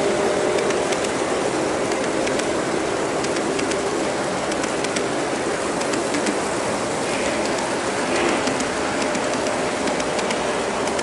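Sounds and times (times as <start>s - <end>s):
model train cars rolling: 0.0s - 11.0s
wheels clicking on rails: 0.0s - 11.0s.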